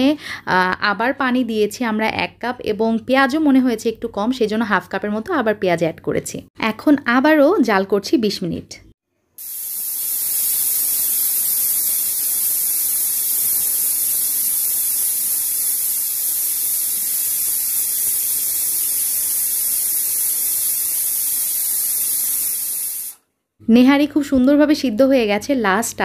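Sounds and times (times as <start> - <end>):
steam hissing from pressure cooker: 9.4 - 23.2.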